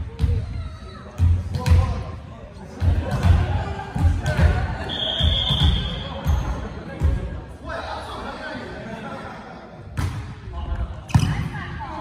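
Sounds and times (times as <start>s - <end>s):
whistle blast: 4.9s - 6.1s.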